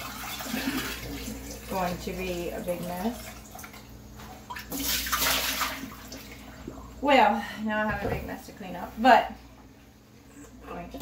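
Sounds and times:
liquid pouring and splashing: 0.0s - 6.8s.

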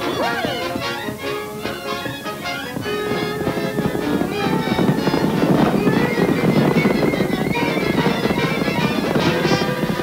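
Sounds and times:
cartoon music: 0.0s - 1.1s.

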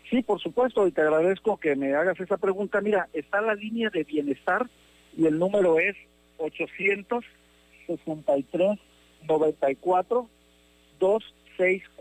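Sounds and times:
man talking over telephone: 0.0s - 10.3s, 11.0s - 12.0s
steady electrical hum: 0.0s - 12.0s.

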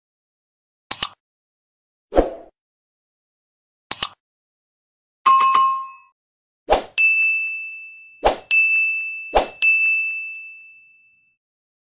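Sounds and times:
bright ding: 7.0s - 11.4s.

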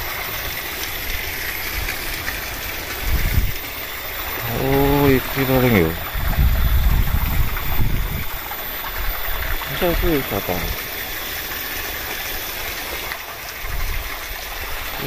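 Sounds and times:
water splashing into pool: 0.0s - 15.0s.

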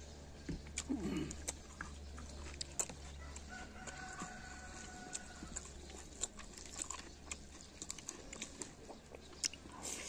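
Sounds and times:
rooster crowing: 3.2s - 5.7s.

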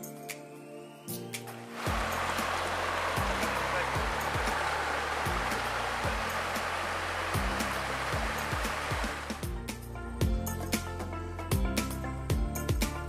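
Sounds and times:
water tumbling over rocks: 1.8s - 9.4s
background music with bass line: 1.8s - 13.0s.

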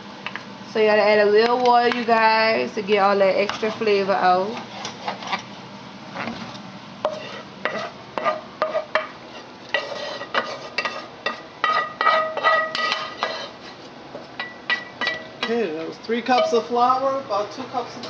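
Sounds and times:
utensils stirring in a metal pot: 3.3s - 5.5s, 6.1s - 16.9s.

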